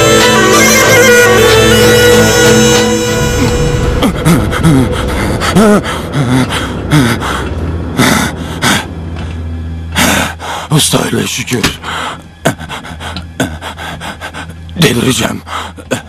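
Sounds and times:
music: 0.0 - 16.0
man groaning and gasping: 3.4 - 9.0.

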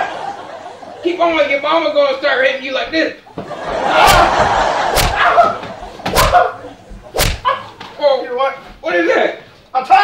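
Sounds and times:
wooden stick smacking a back: 4.0 - 8.0.

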